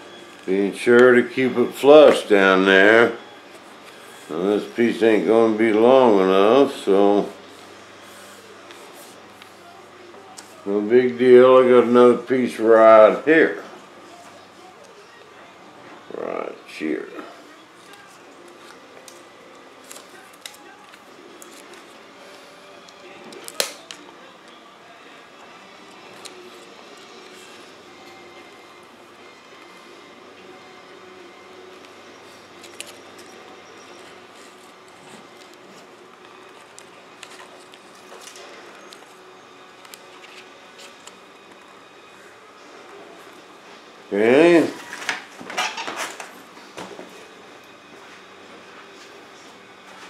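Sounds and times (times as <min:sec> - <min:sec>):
steady background hum: 0:00.0 - 0:50.0
tape being peeled and pressed: 0:17.8 - 0:22.2, 0:22.8 - 0:24.6, 0:25.7 - 0:28.7, 0:31.7 - 0:42.0.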